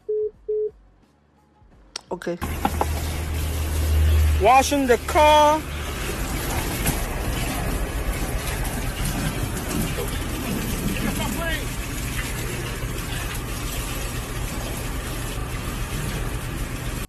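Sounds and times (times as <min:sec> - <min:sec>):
water spray hissing: 0:02.4 - 0:17.0.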